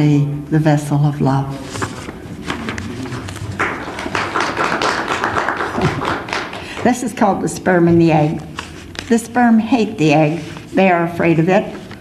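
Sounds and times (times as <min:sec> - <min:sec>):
audience applause: 0:02.8 - 0:06.9.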